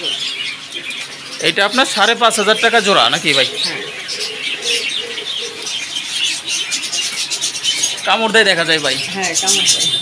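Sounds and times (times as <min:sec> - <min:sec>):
caged birds chirping: 0:00.0 - 0:10.0
low bird coo: 0:03.3 - 0:08.0.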